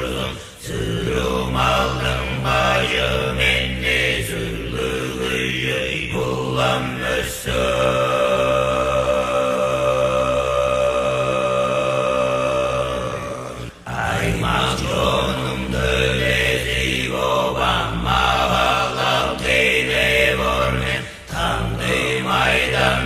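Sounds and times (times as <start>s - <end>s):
low chanting over a drone: 0.0s - 23.0s.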